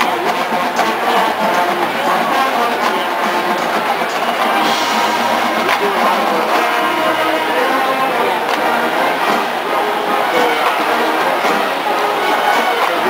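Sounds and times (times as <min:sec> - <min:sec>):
drumline: 0:00.0 - 0:13.0
marching band brass: 0:00.0 - 0:13.0
sharp drum strokes: 0:03.6 - 0:07.6.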